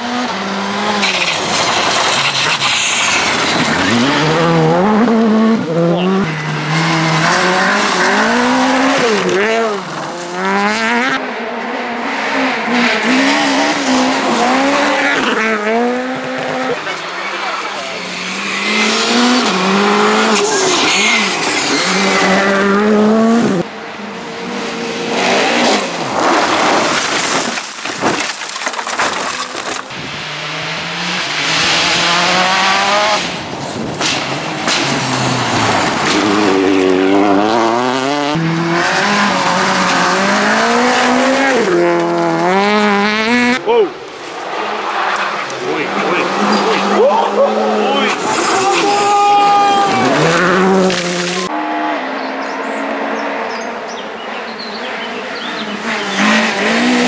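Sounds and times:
rally car engines revving: 0.0 - 57.0
gravel spraying: 1.0 - 4.0.

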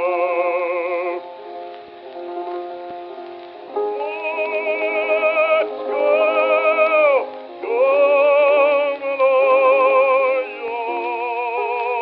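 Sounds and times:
bass voice singing folk song: 3.8 - 12.0.

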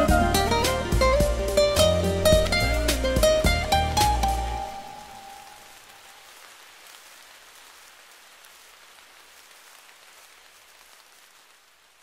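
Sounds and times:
music: 0.0 - 5.6
rain-like patter: 0.0 - 12.0.

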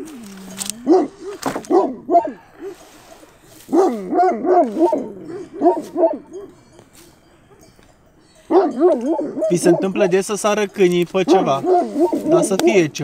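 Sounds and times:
sheepdog barking: 0.8 - 6.7, 8.4 - 10.2, 11.2 - 13.0.

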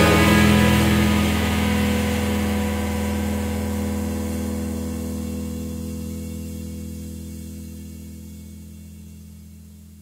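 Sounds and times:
electric guitars droning chord: 0.0 - 9.8.

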